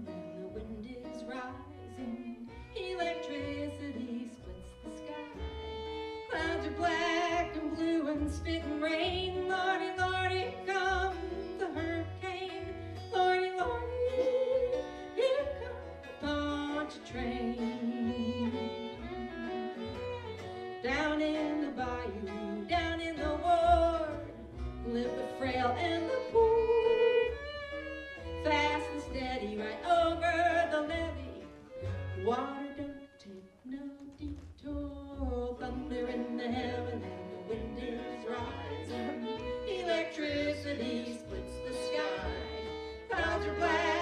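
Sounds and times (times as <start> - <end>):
acoustic guitar: 0.0 - 44.0
fiddle: 0.0 - 44.0
plucked upright bass: 0.0 - 44.0
person singing: 6.3 - 20.0, 32.2 - 44.0.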